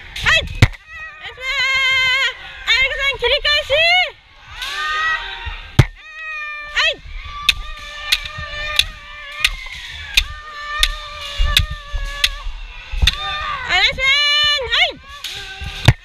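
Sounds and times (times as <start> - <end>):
long held shouts: 4.4 - 16.0.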